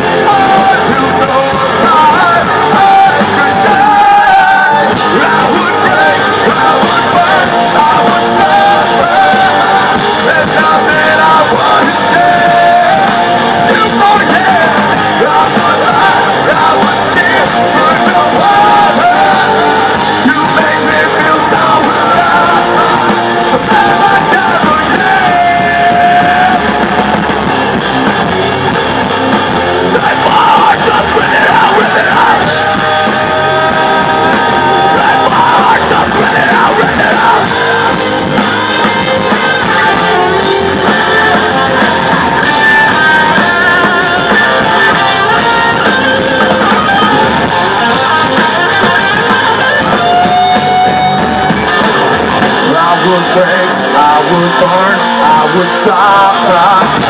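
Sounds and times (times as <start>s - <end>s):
bass: 0.0s - 57.0s
distorted electric guitars: 0.0s - 57.0s
drums: 0.0s - 57.0s
hard rock band playing: 0.0s - 57.0s.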